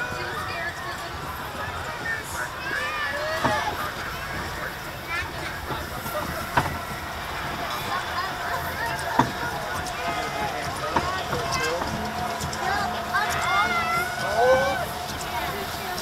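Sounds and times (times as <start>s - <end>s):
riders' voices: 0.0s - 16.0s
roller coaster rumble: 0.0s - 16.0s.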